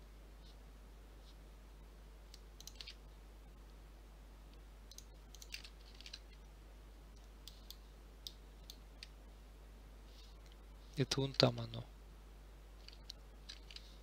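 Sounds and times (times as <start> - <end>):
computer mouse and keyboard clicks: 2.6 - 3.0, 4.9 - 6.4, 7.2 - 9.2, 12.8 - 14.0.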